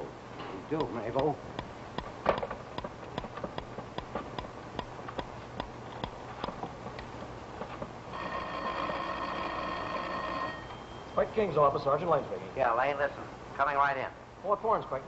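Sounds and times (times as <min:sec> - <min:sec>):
telephone ringing: 0:08.1 - 0:11.3.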